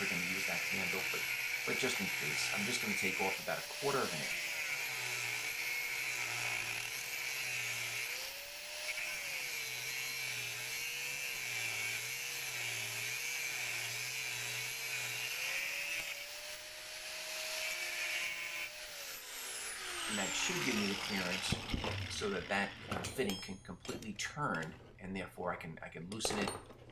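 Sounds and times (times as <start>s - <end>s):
angle grinder grinding metal: 0.0s - 26.9s.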